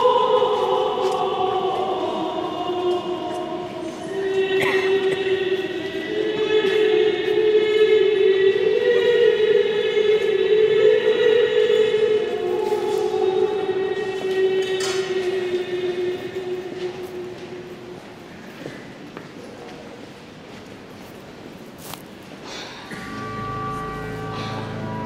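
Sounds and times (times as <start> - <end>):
pipe organ sustained chords: 22.9 - 25.0.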